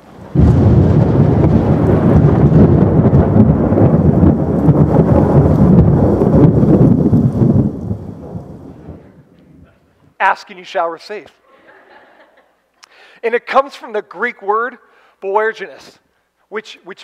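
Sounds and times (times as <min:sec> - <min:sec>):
rolling thunder: 0:00.0 - 0:09.9.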